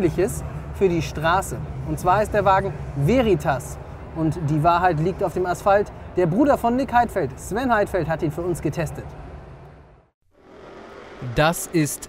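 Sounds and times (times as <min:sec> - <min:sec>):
faint vehicle rushing: 0:00.0 - 0:12.0.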